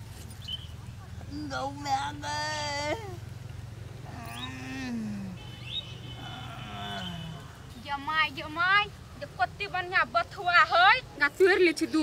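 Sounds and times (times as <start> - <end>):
man groaning in pain: 4.1 - 5.4, 6.2 - 7.4.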